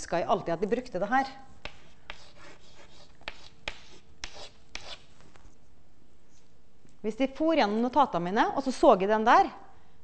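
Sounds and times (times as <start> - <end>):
chalk scratching on blackboard: 1.6 - 5.1.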